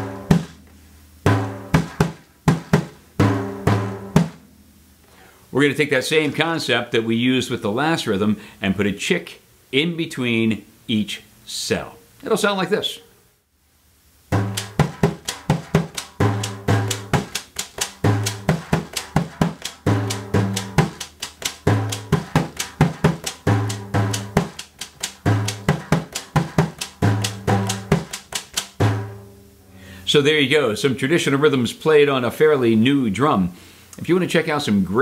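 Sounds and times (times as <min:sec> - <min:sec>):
hand drum rhythm: 0:00.0 - 0:00.6, 0:01.3 - 0:04.5, 0:14.3 - 0:29.2.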